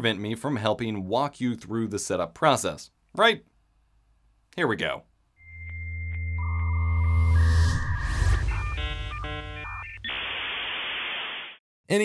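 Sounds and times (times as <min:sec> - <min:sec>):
synth swell: 0:05.4 - 0:10.0
deep bass: 0:05.6 - 0:09.8
rising whoosh: 0:06.4 - 0:09.8
choppy stuttering synth chords: 0:07.8 - 0:10.0.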